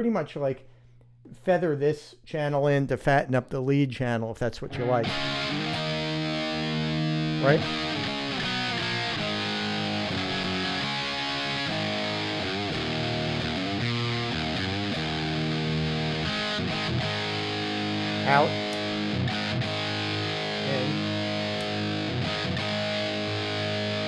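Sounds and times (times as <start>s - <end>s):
distorted electric guitar: 4.7s - 24.0s.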